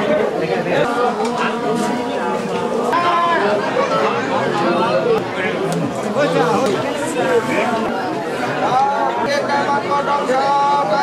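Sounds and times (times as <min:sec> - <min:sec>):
crowd chatter: 0:00.0 - 0:11.0.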